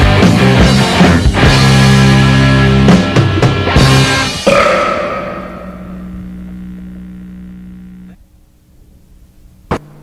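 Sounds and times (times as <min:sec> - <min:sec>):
punk rock song ending: 0:00.0 - 0:06.5
low held tone: 0:04.4 - 0:08.2.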